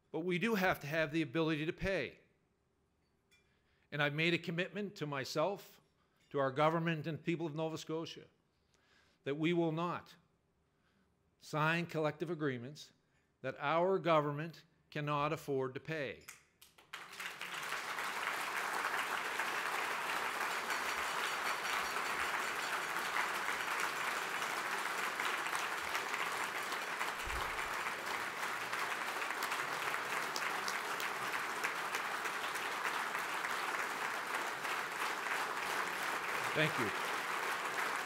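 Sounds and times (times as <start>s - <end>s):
audience applauding: 16.8s - 38.0s.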